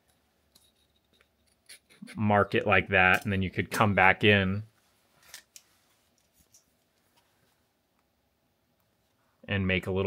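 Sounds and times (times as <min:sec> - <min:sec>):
small hand tools clicking and scraping: 0:00.0 - 0:02.1.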